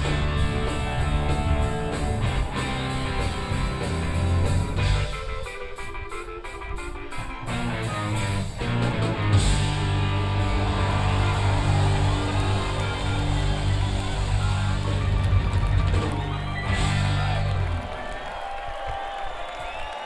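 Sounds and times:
live rock band chord: 0.0s - 17.6s.

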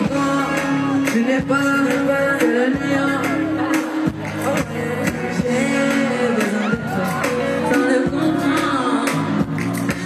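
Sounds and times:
live pop music: 0.0s - 10.0s
person singing: 0.0s - 10.0s.

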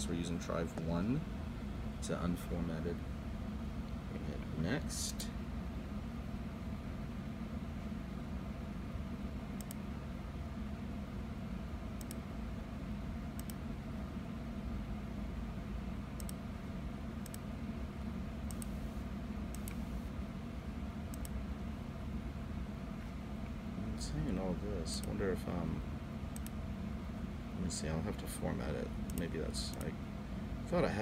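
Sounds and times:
computer fans humming: 0.0s - 31.0s.

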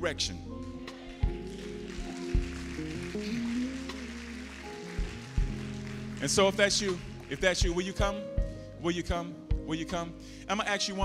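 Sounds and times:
bass guitar low notes: 0.0s - 10.6s
sustained chords and slow melody: 0.0s - 11.0s.

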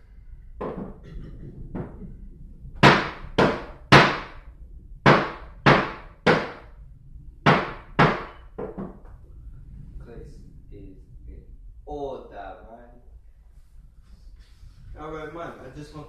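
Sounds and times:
gavel banging on a table: 0.6s - 1.1s.

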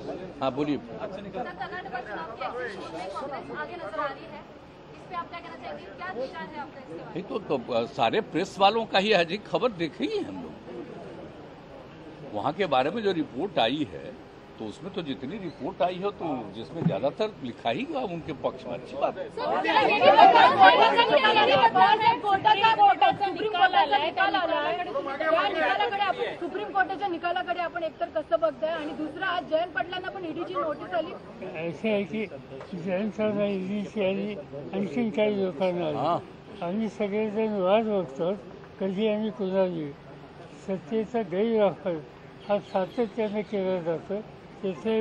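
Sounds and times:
overlapping voices talking: 19.3s - 36.8s.

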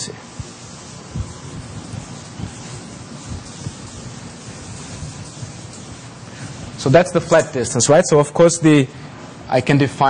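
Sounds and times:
eraser scrubbing blackboard: 0.3s - 7.6s.

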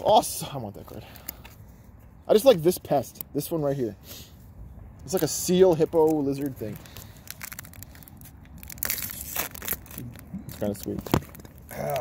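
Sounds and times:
foil wrapper tearing: 5.9s - 12.0s.

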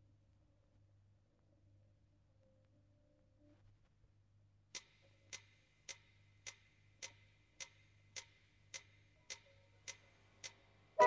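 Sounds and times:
faint low hum: 0.0s - 7.6s
clock-like ticks: 4.7s - 11.0s
music: 4.8s - 11.0s.

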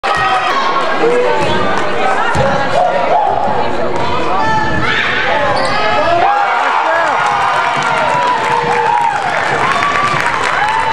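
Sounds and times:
voices and shouts: 0.0s - 10.9s.

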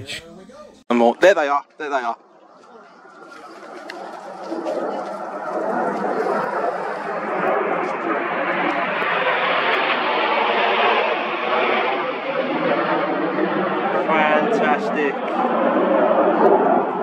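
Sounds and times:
jets passing overhead: 0.9s - 17.0s.

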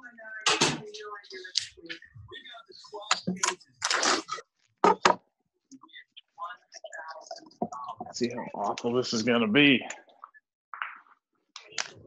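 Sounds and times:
indistinct talking: 0.0s - 12.0s.

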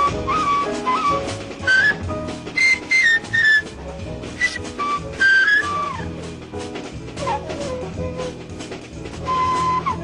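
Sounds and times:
bass: 0.0s - 10.0s
drums with cymbals: 0.0s - 10.0s
piano chords: 0.0s - 10.0s.

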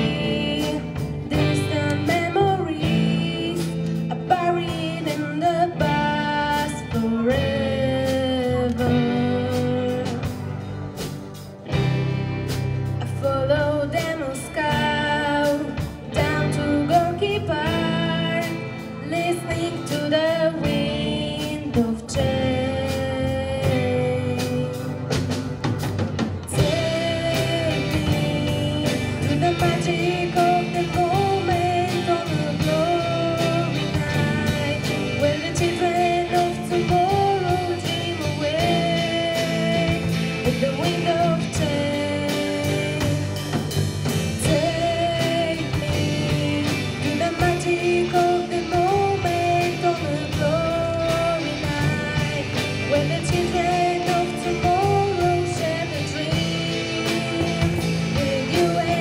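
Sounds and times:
woman singing lead vocal: 0.0s - 11.0s, 12.9s - 25.5s, 26.4s - 59.0s
live rock band: 0.0s - 59.0s.

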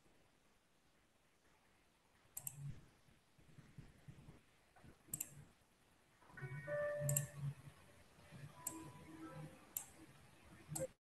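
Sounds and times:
faint steady tones: 0.0s - 11.0s
computer mouse clicks: 2.3s - 2.8s, 5.1s - 5.4s, 7.0s - 7.4s, 8.6s - 8.9s, 9.7s - 10.0s, 10.7s - 11.0s.

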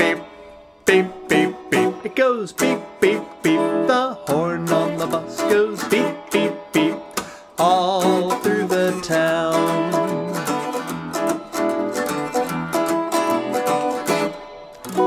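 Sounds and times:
guitar playing: 0.0s - 15.0s.

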